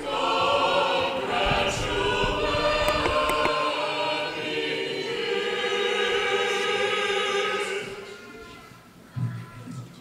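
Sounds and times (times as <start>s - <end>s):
church choir singing unaccompanied: 0.0s - 8.4s.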